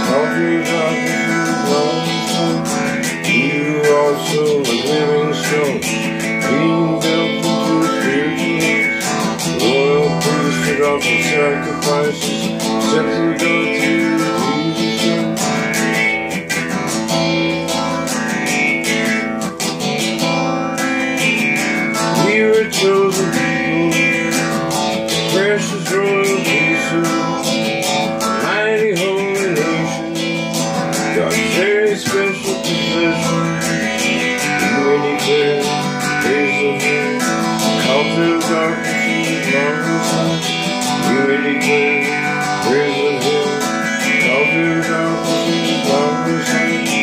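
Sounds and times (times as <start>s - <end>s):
guitar strumming: 0.0s - 47.0s.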